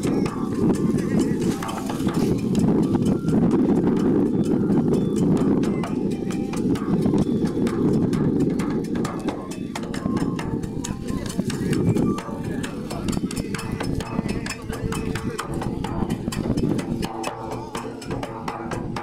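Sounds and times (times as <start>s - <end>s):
wind rumble on microphone: 0.0s - 19.0s.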